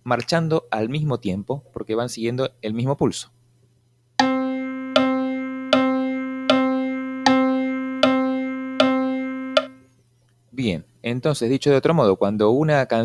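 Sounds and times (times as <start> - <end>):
clock-like pulse click: 4.2 - 9.8
piano notes: 4.2 - 9.8.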